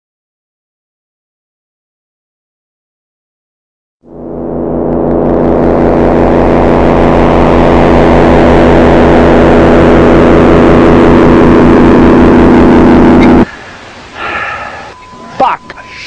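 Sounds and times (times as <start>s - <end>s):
fast throbbing low hum: 4.0s - 13.5s
loud sustained droning: 4.0s - 16.0s.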